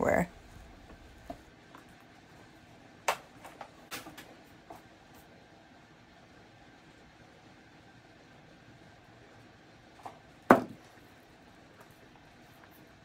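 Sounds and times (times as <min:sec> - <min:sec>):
loud sharp knock: 0:10.5 - 0:10.8.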